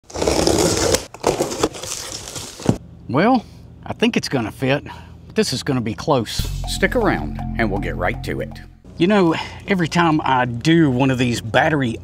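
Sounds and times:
cardboard scraping and rustling: 0.1 - 2.8
packing tape being slit open: 0.1 - 2.8.

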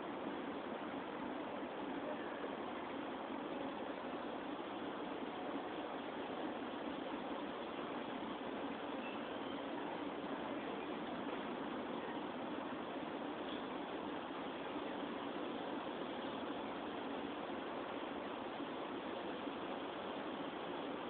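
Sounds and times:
steady outdoor hiss: 0.0 - 21.0.

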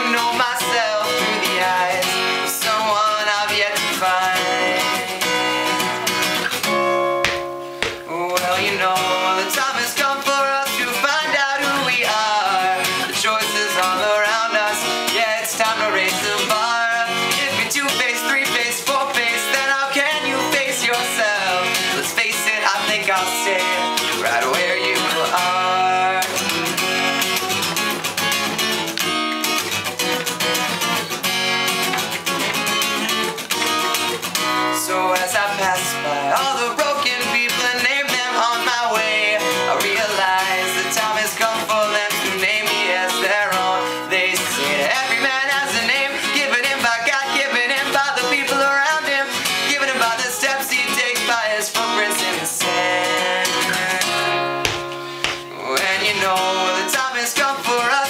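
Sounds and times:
young man singing: 0.0 - 27.4, 32.2 - 58.0
acoustic guitar strummed: 0.0 - 58.0.

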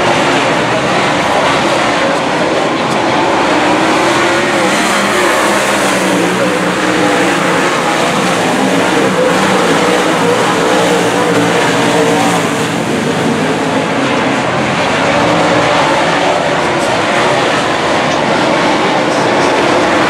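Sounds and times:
race car engines running hard: 0.0 - 20.0.

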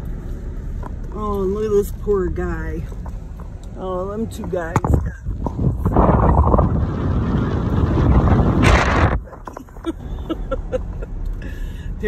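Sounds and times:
car road noise: 0.0 - 12.0
wind buffeting microphone: 4.2 - 9.8.

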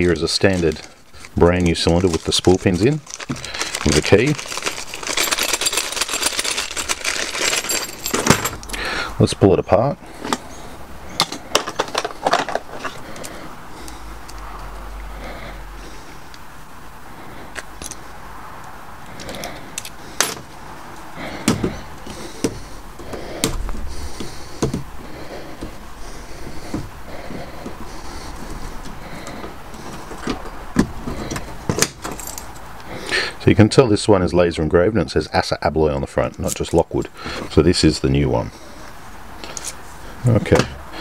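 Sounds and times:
keys and lock clinking: 1.5 - 8.8, 28.1 - 32.8.

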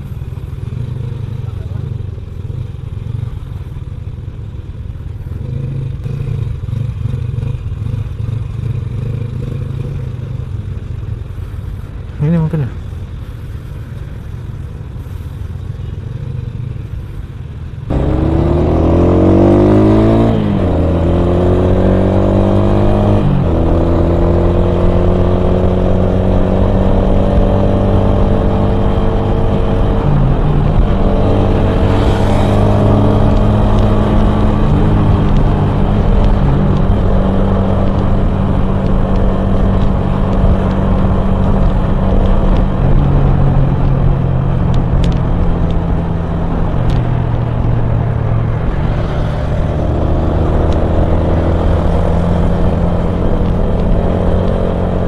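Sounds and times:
motorcycle engine accelerating: 0.0 - 11.6, 15.1 - 55.0
gear changes: 11.3 - 55.0.

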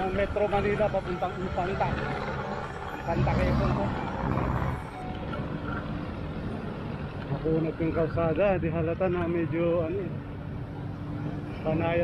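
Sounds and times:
passing trucks and cars: 0.0 - 12.0.

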